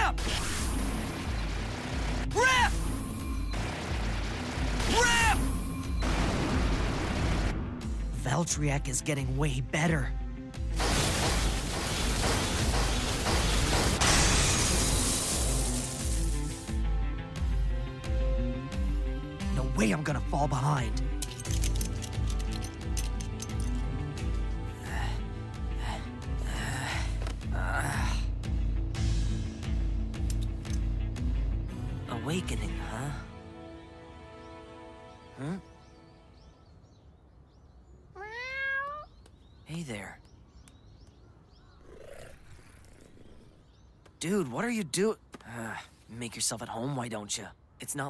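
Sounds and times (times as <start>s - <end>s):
loud rushing hiss: 10.8s - 16.7s
cat meowing: 38.1s - 39.1s.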